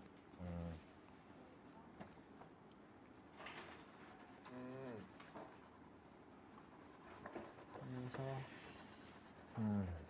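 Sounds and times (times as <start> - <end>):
pens scratching on paper: 3.4 - 10.0.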